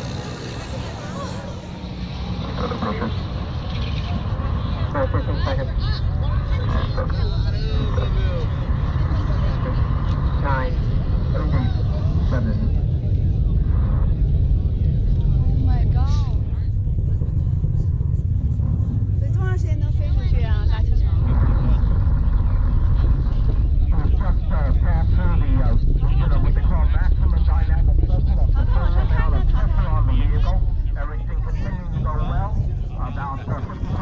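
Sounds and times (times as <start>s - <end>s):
deep rocket engine rumble: 0.0s - 34.0s.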